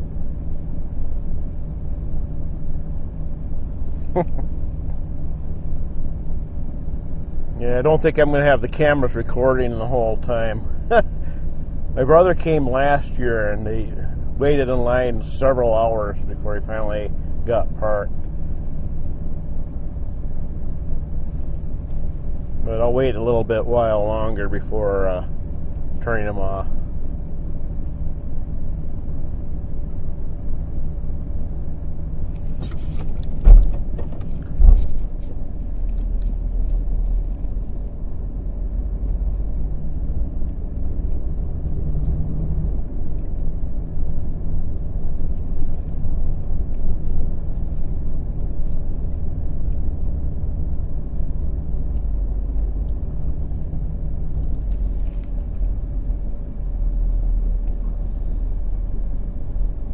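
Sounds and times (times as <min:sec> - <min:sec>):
engine and road rumble: 0:00.0 - 0:59.9
sharp loud thumps: 0:33.4 - 0:35.0.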